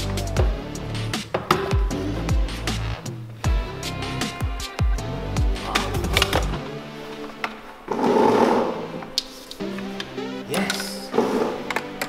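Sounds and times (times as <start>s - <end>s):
background music: 0.0s - 12.0s
loud scraping rustle: 7.9s - 8.9s.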